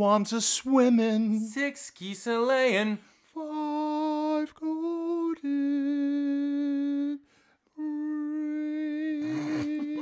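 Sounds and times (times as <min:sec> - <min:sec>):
man singing a long note: 0:07.8 - 0:10.0.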